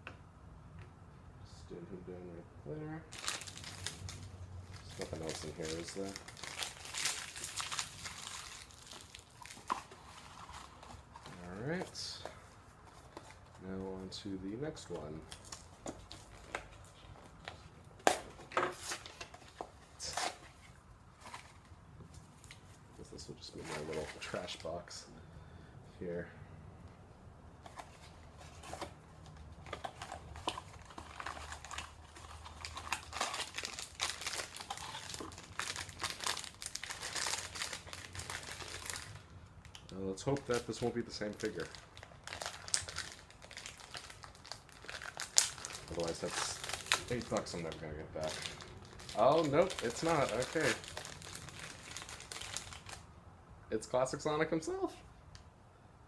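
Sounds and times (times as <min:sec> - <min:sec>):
packaging crinkling: 0:03.1 - 0:12.3, 0:27.7 - 0:53.0.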